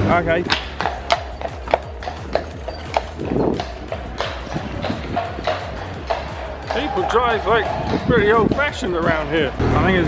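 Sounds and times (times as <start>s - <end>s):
horse hooves clip-clopping on bricks: 0.0s - 9.6s
street noise: 0.0s - 10.0s.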